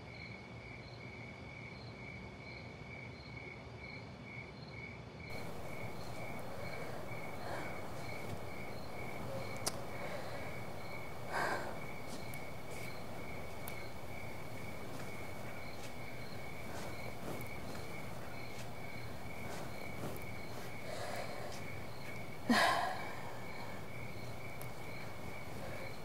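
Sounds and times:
crickets chirping: 0:00.0 - 0:26.0
faint steady hiss: 0:05.3 - 0:26.0
soft footsteps: 0:05.3 - 0:26.0.

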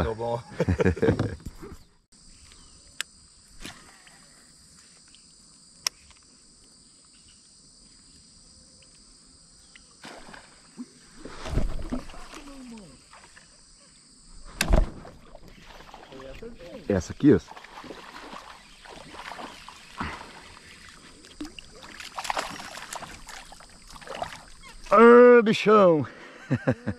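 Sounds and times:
insects chirring: 0:00.0 - 0:26.9
water sloshing against kayak hull: 0:10.0 - 0:13.6, 0:14.4 - 0:25.0
loud thump: 0:14.5 - 0:15.2.

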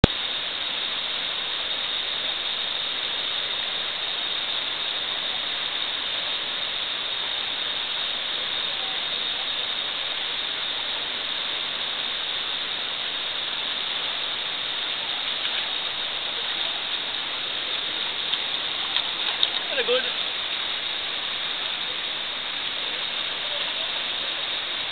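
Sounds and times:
river rapids rushing over boulders: 0:00.0 - 0:24.9.

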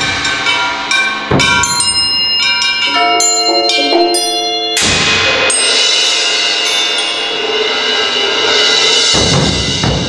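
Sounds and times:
struck metal percussion ringing: 0:00.0 - 0:10.0.

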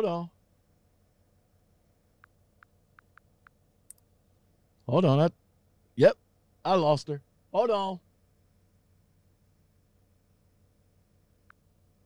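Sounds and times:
faint computer clicks: 0:02.2 - 0:04.1.

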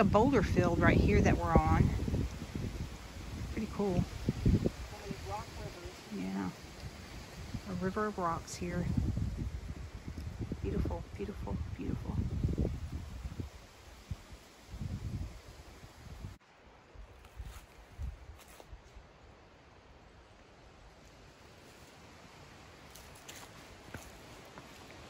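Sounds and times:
leaves rustling: 0:00.0 - 0:25.0
footsteps on forest trail: 0:17.0 - 0:19.0, 0:21.0 - 0:25.0.

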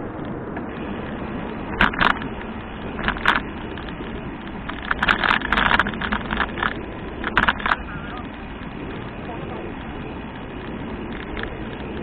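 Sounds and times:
bicycle rattling: 0:00.0 - 0:12.0
bicycle tyre rumble: 0:00.0 - 0:12.0
wind: 0:00.0 - 0:12.0.

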